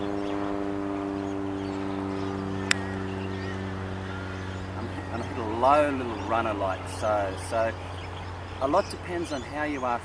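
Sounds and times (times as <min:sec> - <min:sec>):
steady machine hum: 0:00.0 - 0:10.0
golf club striking ball: 0:02.6 - 0:03.5.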